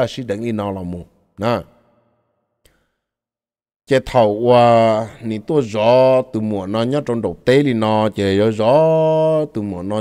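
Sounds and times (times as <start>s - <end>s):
man speaking: 0.0s - 1.7s, 3.9s - 10.0s.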